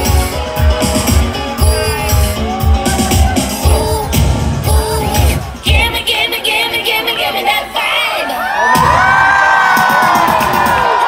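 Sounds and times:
crowd cheering and screaming: 0.0s - 5.7s, 7.2s - 11.0s
pop song beat: 0.0s - 11.0s.

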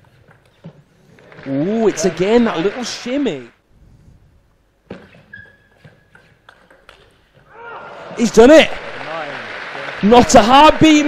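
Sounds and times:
crowd cheering and applauding: 1.8s - 3.2s, 7.6s - 11.0s
table tennis ball clicks: 6.1s - 7.2s.

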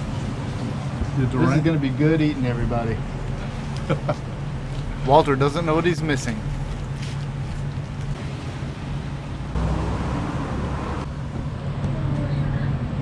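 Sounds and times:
road traffic hum: 0.0s - 13.0s
vehicle passing: 0.0s - 13.0s.

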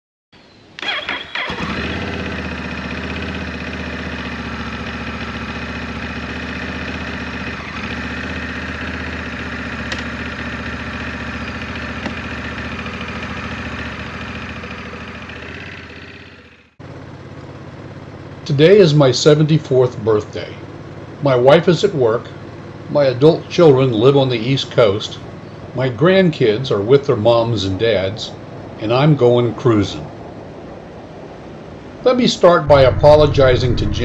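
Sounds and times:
motorcycle engine starting and idling: 0.7s - 29.4s, 32.4s - 34.0s.

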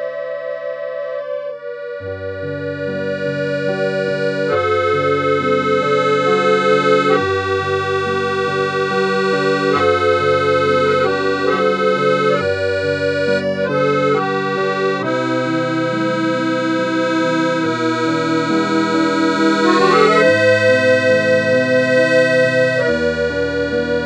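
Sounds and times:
instrumental music held chords: 0.0s - 24.0s.

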